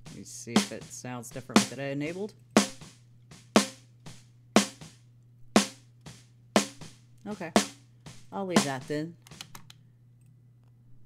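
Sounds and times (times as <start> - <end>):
snare drum hits: 0.0 - 1.8, 2.6 - 5.0, 5.6 - 7.0, 7.6 - 9.0
faint low hum: 0.0 - 11.0.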